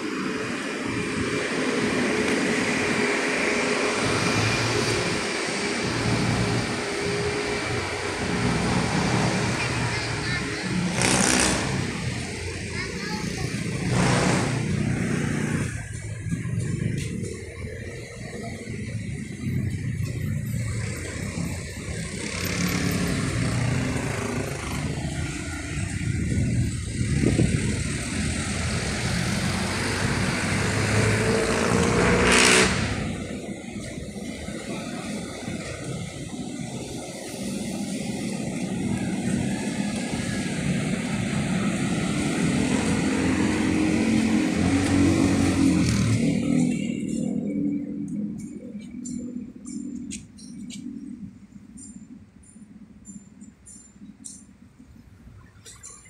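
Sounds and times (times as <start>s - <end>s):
loud rushing noise: 0.0s - 48.5s
vehicle engines revving: 0.0s - 54.5s.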